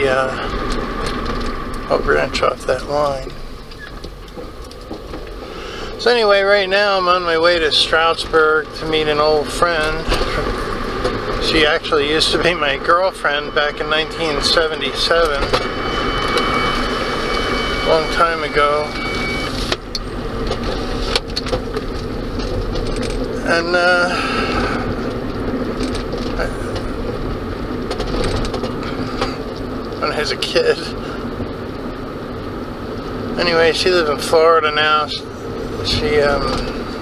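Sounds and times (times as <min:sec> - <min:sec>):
car engine and tyres rumbling: 0:00.0 - 0:37.0.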